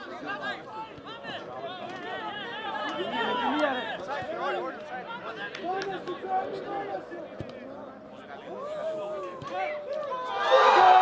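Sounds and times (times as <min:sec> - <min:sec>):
voices shouting over one another: 0:08.5 - 0:11.0.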